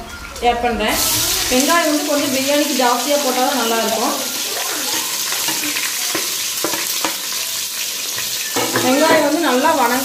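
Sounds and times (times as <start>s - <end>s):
onions sizzling in hot oil: 0.8s - 10.0s.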